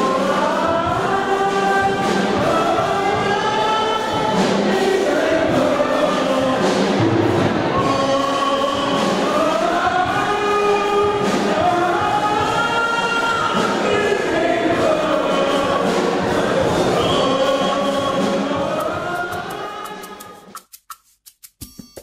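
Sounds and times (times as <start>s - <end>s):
choir singing: 0.0s - 20.5s.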